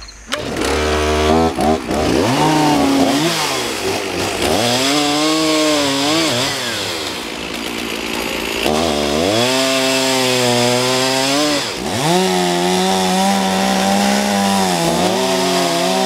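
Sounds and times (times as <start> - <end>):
chainsaw cutting through log: 0.3 - 16.0.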